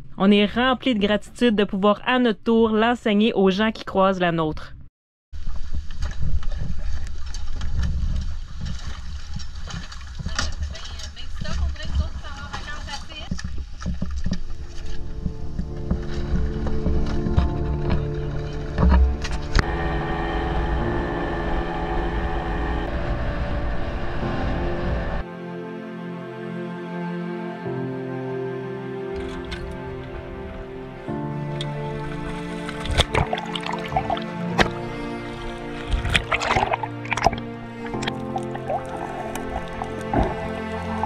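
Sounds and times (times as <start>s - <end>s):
water lapping: 5.4s - 23.7s, 29.1s - 41.0s
wind rumbling on microphone: 5.4s - 25.2s
outboard motor running: 6.5s - 25.2s, 29.1s - 41.0s.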